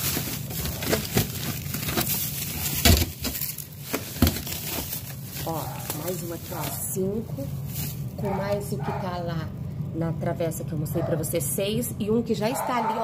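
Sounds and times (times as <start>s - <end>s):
plastic bags crinkling: 0.0s - 8.6s.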